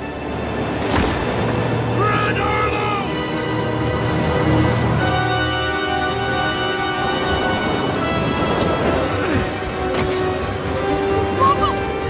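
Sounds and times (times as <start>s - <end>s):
rushing floodwater rumble: 0.0s - 12.0s
sharp crack: 0.8s - 1.6s
person calling out: 2.0s - 3.2s.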